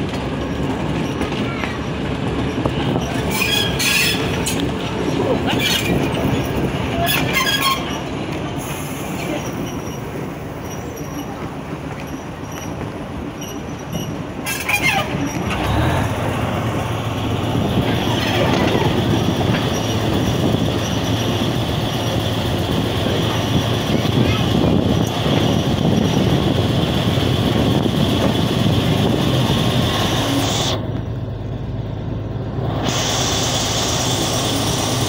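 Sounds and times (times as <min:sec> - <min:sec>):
locomotive engine drone: 0:00.0 - 0:35.0
wheels rumbling on rail: 0:00.0 - 0:35.0
high-pitched wheel squeals: 0:02.9 - 0:04.6, 0:05.2 - 0:08.1, 0:13.4 - 0:15.4.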